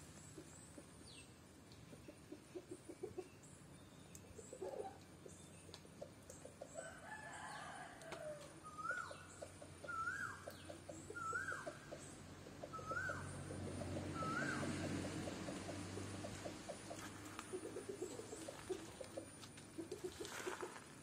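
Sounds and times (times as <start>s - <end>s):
bird whistling call: 8.6s - 10.4s, 11.1s - 11.8s, 12.7s - 13.3s, 14.2s - 14.7s.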